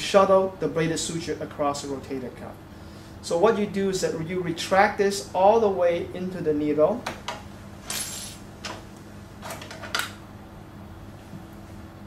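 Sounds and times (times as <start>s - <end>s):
steady low hum: 0.0s - 12.0s
metal instruments rustling: 7.9s - 8.4s.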